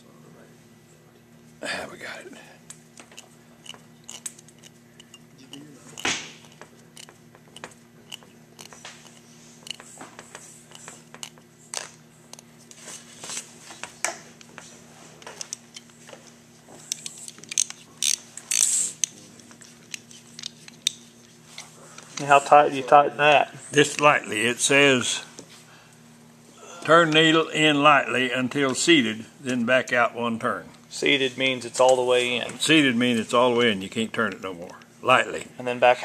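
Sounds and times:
steady low hum: 0.0 - 36.0
small metallic clicks and scrapes: 3.0 - 10.0, 16.9 - 22.3.

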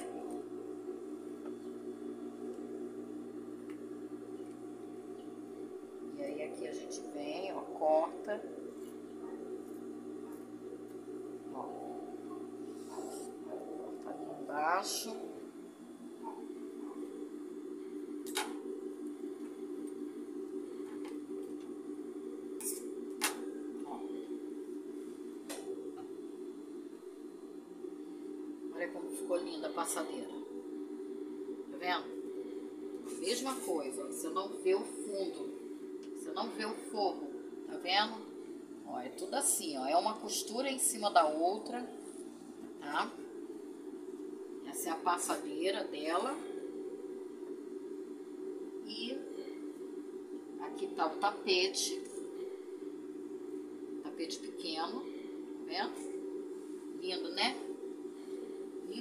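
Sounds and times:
sewing machine motor hum: 0.0 - 21.8.

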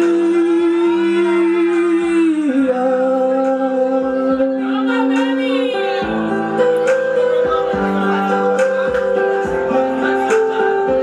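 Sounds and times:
karaoke backing track: 0.0 - 11.0.

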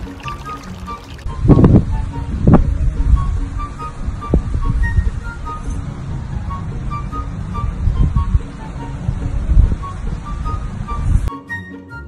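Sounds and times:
wind buffeting microphone: 0.0 - 11.3
faint background music: 0.0 - 12.0.

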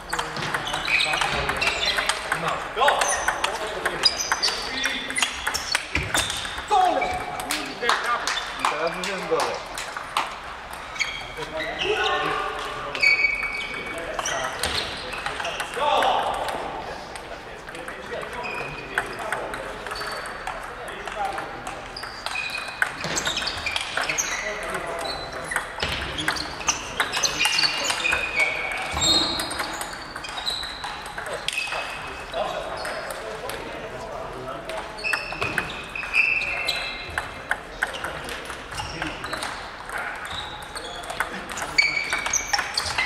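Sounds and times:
table tennis balls clicking: 0.0 - 11.2, 12.6 - 33.8, 34.6 - 43.0
voices in a hall: 0.0 - 43.0.

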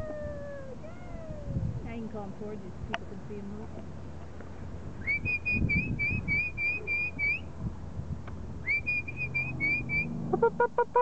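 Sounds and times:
person whistling short notes: 5.0 - 7.5, 8.6 - 10.1.

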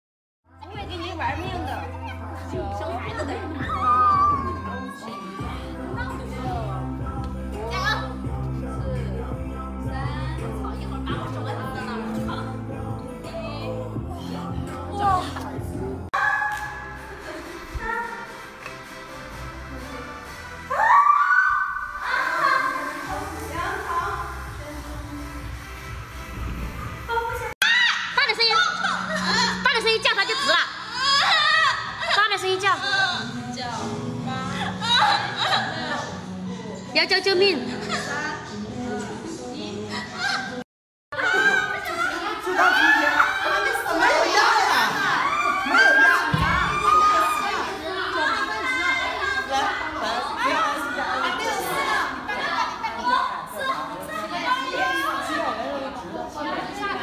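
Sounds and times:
music: 0.5 - 57.0.

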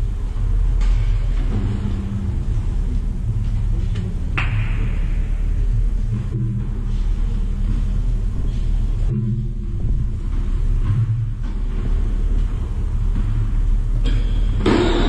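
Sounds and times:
low room rumble: 0.0 - 15.0.

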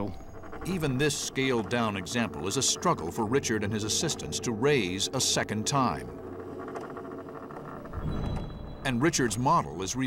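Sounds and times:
rope creaking under strain: 0.0 - 8.8.

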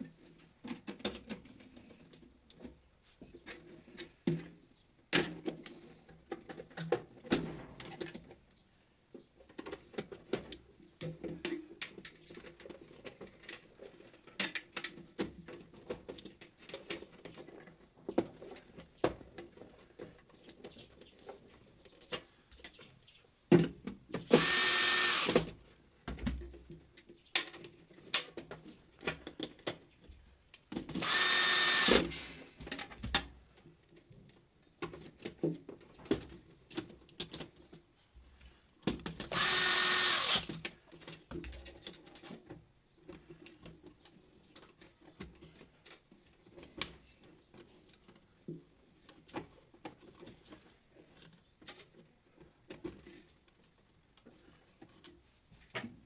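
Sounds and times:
cordless electric screwdriver running: 24.3 - 25.5, 31.0 - 32.1, 39.3 - 40.5.

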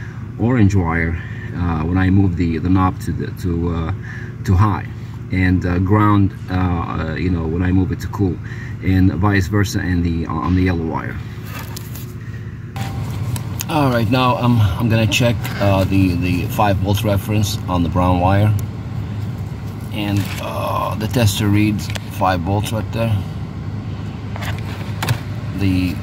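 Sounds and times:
steady low hum: 0.0 - 26.0
car engine idling: 12.8 - 26.0.

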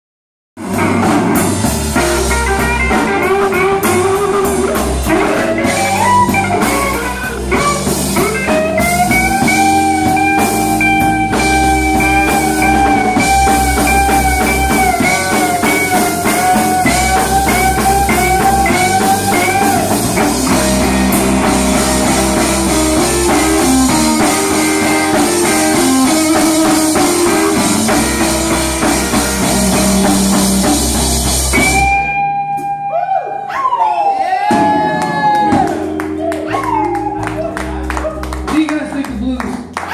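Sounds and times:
electric blues band: 0.6 - 39.9.

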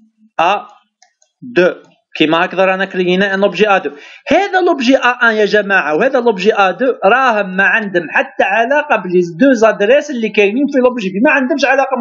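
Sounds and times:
man speaking syllables: 0.4 - 0.8, 1.4 - 12.0.

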